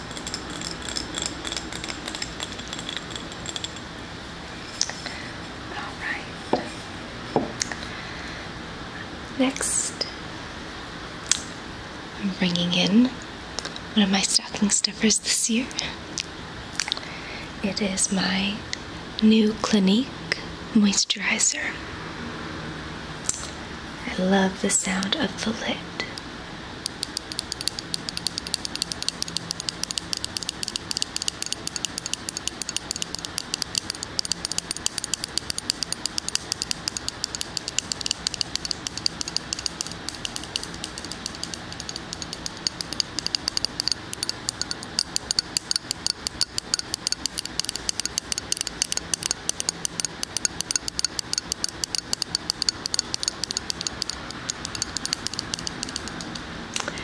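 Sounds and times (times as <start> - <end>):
fingernails tapping on jar lid: 0.0 - 3.9, 26.9 - 56.4.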